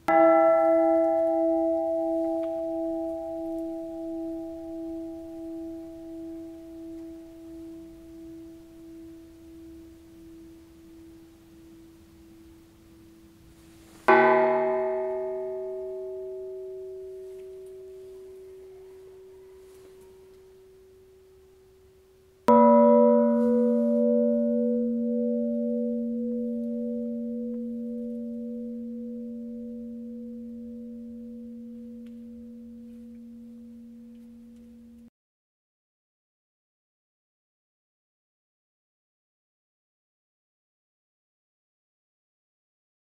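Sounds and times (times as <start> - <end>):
deep church bell ringing: 0.0 - 13.5, 14.1 - 21.5, 22.4 - 35.1
high-pitched church bell ringing: 0.0 - 13.5, 14.1 - 21.8, 22.4 - 35.0.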